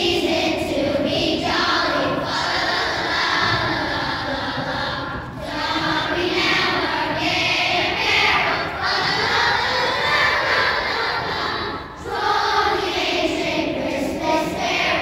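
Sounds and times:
children singing a carol: 0.0 - 15.0.

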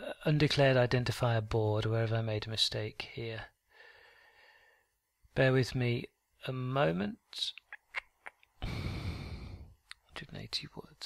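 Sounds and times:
man sighing: 8.6 - 9.8.

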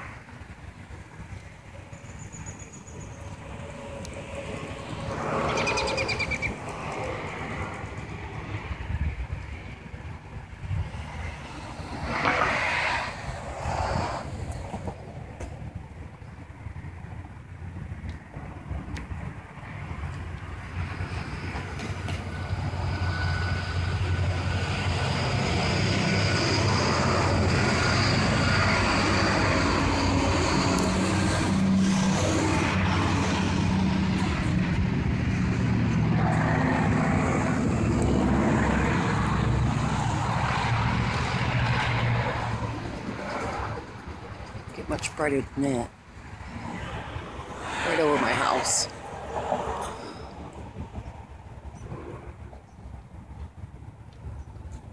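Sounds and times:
engine humming: 0.0 - 45.3.

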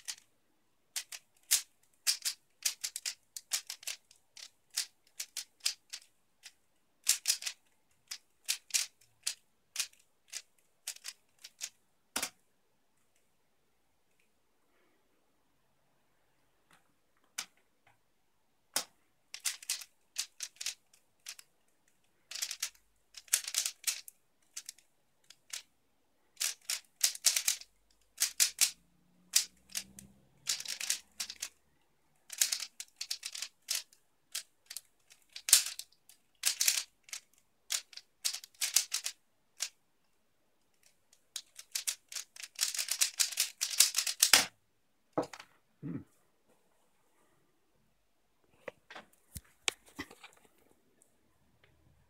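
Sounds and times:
puzzle cube clicking turns: 0.0 - 0.3, 0.9 - 12.4, 18.7 - 25.7, 26.3 - 44.6.

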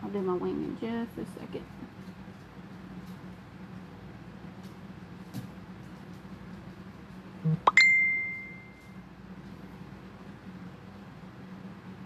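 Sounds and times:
electronic notification chime: 7.7 - 8.7.

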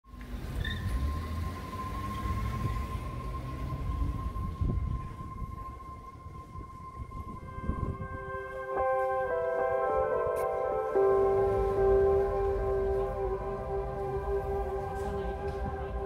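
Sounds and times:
steady high-pitched tone: 0.8 - 16.0
soft plucked ambient music: 0.9 - 16.0
low rumbling drone: 1.1 - 16.0.

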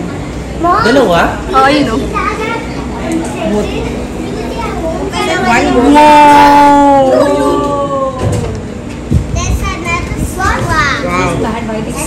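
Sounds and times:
crowd chatter: 0.0 - 12.0
people exclaiming wow: 5.7 - 8.6.

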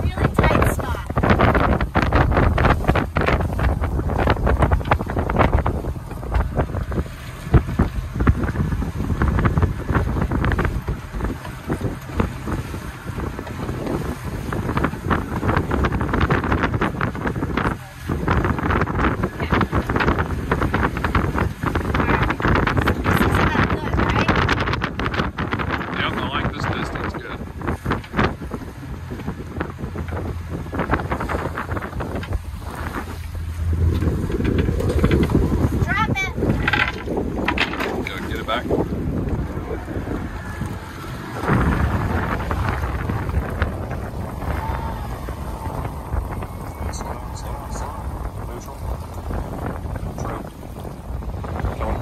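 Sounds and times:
boat and water rushing: 0.0 - 52.0
wind buffeting microphone: 0.0 - 52.0
brief voices: 44.4 - 49.1.

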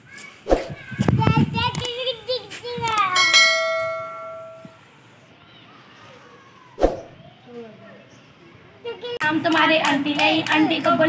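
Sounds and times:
sharp clicks: 1.0 - 2.0, 2.9 - 3.1
bell ding: 3.2 - 4.8.

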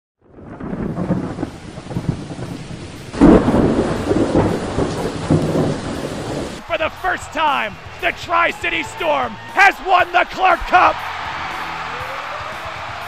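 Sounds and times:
rumbling thunder: 0.2 - 6.6
loud thunderclap: 0.2 - 6.7
rain: 0.2 - 8.1, 10.8 - 13.0.

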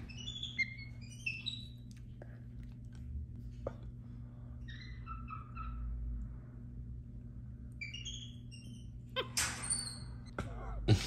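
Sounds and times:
monkey chirping and twittering: 0.0 - 1.8, 7.8 - 10.1.

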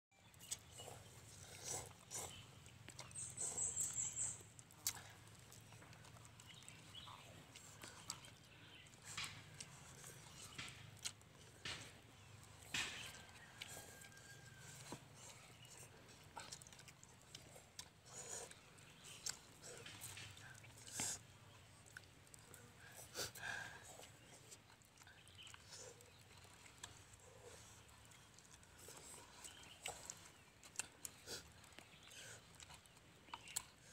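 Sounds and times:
people slurping noodles: 0.5 - 5.3.

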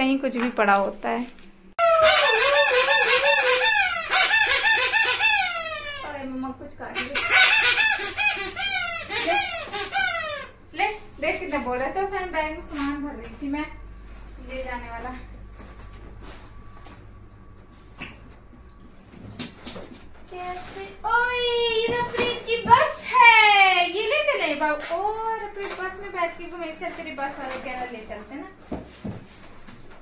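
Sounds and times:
chickens squawking: 1.8 - 6.1, 7.0 - 10.6.

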